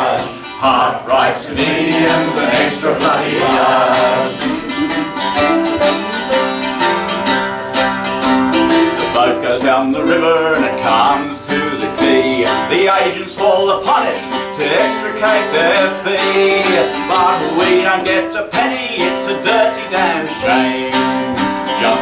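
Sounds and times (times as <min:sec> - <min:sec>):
man singing: 0:00.0 - 0:05.3, 0:09.1 - 0:22.0
acoustic guitar strummed: 0:00.0 - 0:22.0
mandolin: 0:00.0 - 0:22.0.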